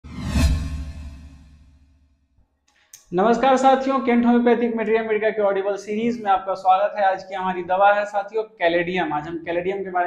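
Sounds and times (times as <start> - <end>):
deep low boom: 0.0 - 1.8
whoosh sound effect: 0.0 - 1.8.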